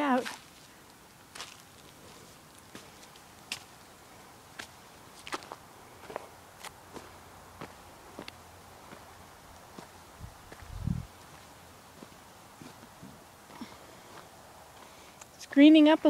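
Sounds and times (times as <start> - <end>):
footsteps crunching on gravel: 0.2 - 3.8, 4.6 - 15.0.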